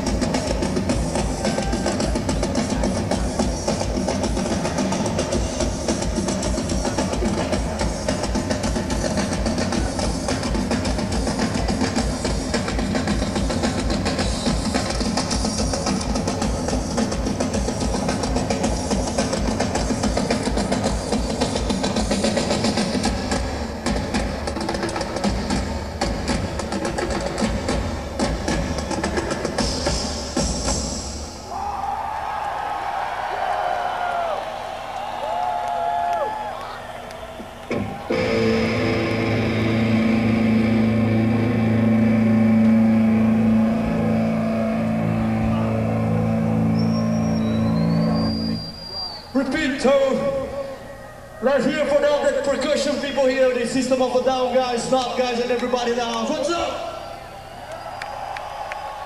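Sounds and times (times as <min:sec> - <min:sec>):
crowd noise with shouts: 0:00.0 - 0:23.4, 0:31.2 - 0:59.0
pounding drum kit: 0:00.0 - 0:31.7
metal band playing: 0:37.7 - 0:48.2
distorted guitar chord ringing: 0:38.1 - 0:48.5.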